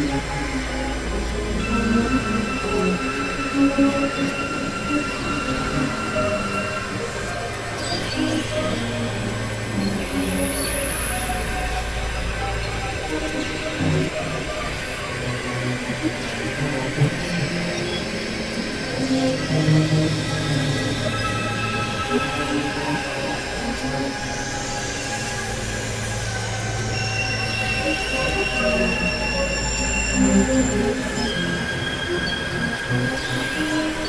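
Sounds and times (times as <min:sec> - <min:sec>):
low electronic drone: 0:00.0 - 0:34.0.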